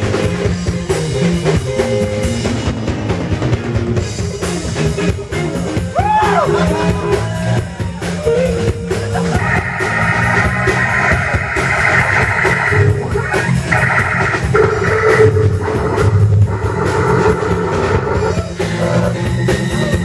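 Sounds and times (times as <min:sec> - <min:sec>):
bass guitar: 0:00.0 - 0:20.0
drum kit beat: 0:00.0 - 0:20.0
electric guitar: 0:00.0 - 0:20.0
keyboards: 0:00.0 - 0:20.0.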